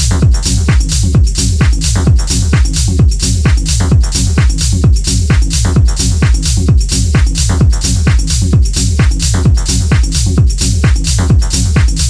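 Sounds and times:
hi-hats: 0.0 - 12.0
techno kick drum: 0.0 - 12.0.

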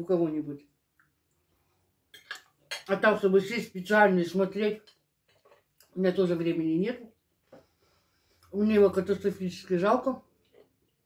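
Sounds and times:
woman speaking: 0.0 - 0.7, 2.9 - 4.8, 6.0 - 7.1, 8.5 - 10.3
cutlery clinking on a plate: 2.1 - 2.9.

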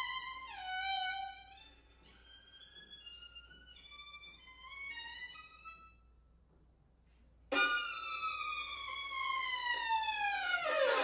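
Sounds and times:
violin note sliding downward: 7.5 - 11.0.

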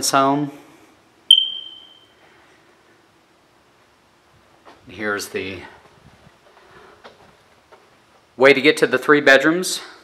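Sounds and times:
high-pitched ping: 1.3 - 2.1.

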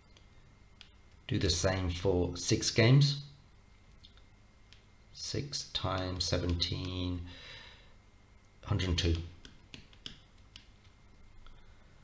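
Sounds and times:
person speaking: 5.2 - 7.4, 8.6 - 10.1.

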